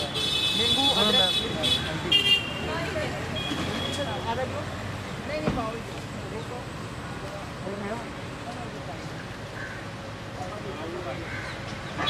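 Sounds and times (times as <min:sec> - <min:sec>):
vehicle horn: 0:00.0 - 0:02.7
street traffic: 0:00.0 - 0:12.0.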